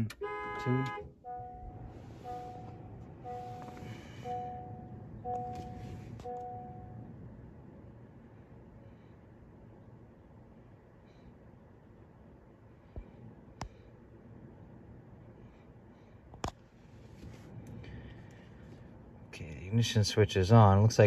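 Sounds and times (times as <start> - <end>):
car two-tone warning chime: 0.0 - 7.2.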